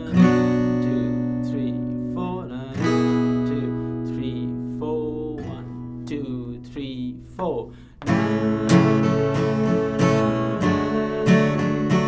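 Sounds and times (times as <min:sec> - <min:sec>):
acoustic guitar strummed: 0:00.0 - 0:12.0.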